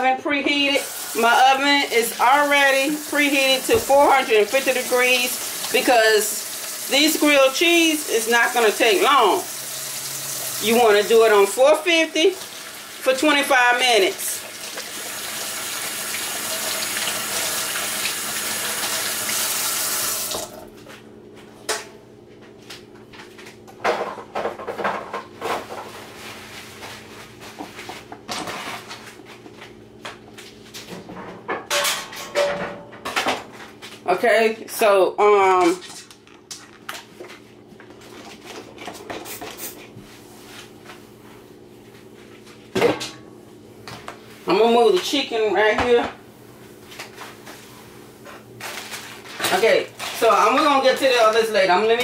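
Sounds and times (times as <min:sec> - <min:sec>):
groceries clicking and rustling: 0:48.6 - 0:50.4.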